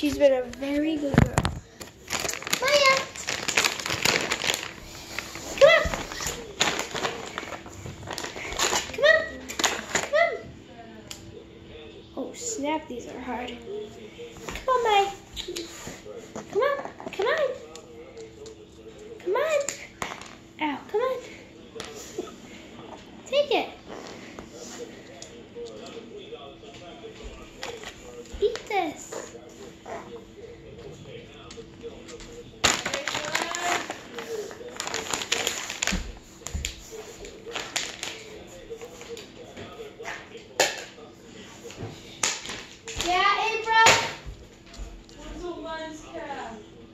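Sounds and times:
dog treats bouncing on hard floor: 32.6 - 34.0.

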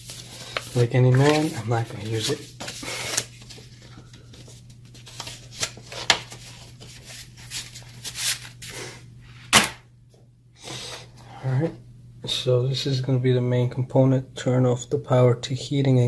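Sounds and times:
paper and cardboard rustling: 0.0 - 8.7
steady low hum: 0.0 - 16.0.

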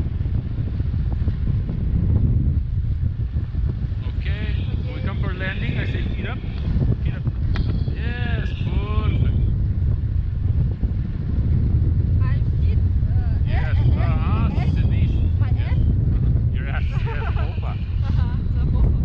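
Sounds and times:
wind rushing over microphone: 0.0 - 19.0
voices calling out: 13.2 - 15.9, 16.6 - 18.5.

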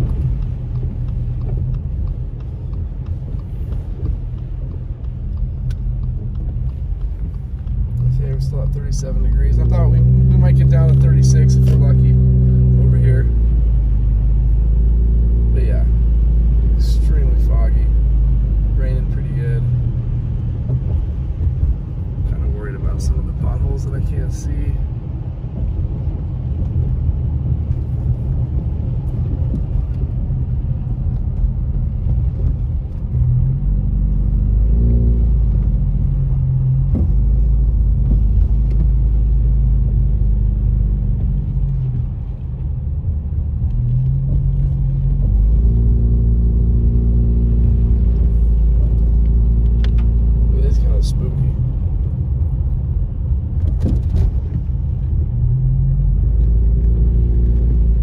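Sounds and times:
car engine and road rumble: 0.0 - 58.0.

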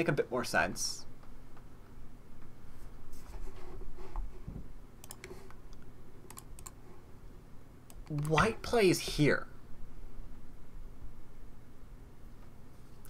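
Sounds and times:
keyboard and mouse clicks: 5.0 - 6.8.

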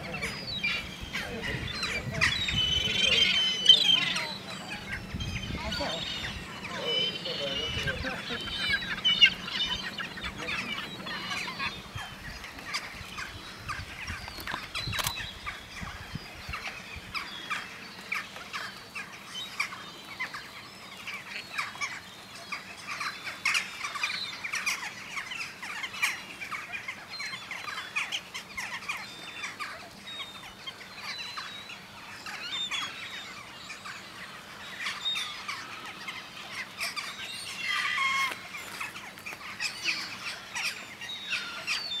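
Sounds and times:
flock of birds calling: 0.0 - 42.0.

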